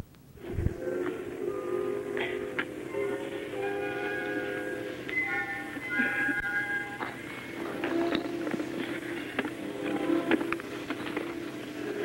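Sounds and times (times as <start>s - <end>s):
orchestra playing sustained chords: 0.8s - 12.0s.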